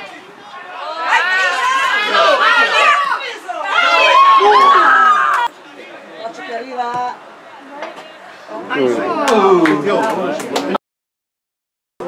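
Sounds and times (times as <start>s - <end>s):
people shouting and calling: 0.0s - 5.5s.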